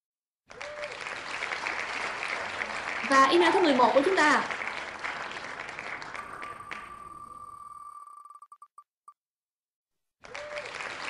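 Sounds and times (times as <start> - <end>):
crowd applause and cheering: 0.5 - 7.9, 10.2 - 11.0.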